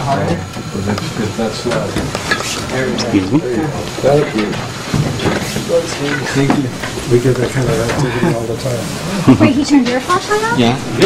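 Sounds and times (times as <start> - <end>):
people murmuring: 0.0 - 11.0.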